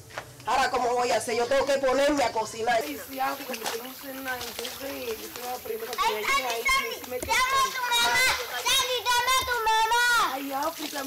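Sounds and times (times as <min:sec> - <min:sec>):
children's voices playing: 0:01.6 - 0:11.0
high-pitched children's calls: 0:05.9 - 0:10.4.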